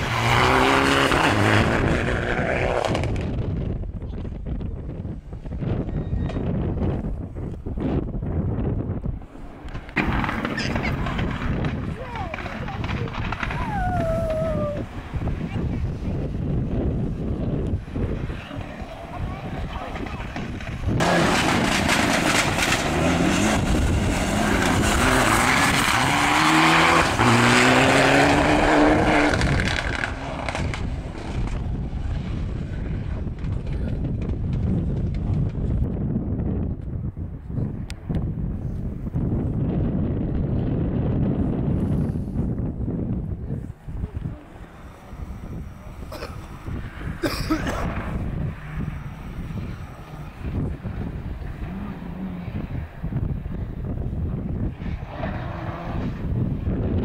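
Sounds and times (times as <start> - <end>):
rally car engine revving: 0.0 - 3.4, 16.2 - 34.6, 44.4 - 53.3, 53.9 - 57.0
wind rumble on microphone: 0.0 - 57.0.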